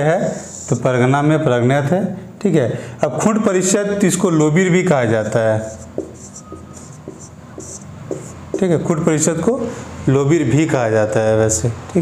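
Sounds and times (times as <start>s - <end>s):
marker scratching on whiteboard: 0.2s - 0.8s, 4.8s - 9.1s.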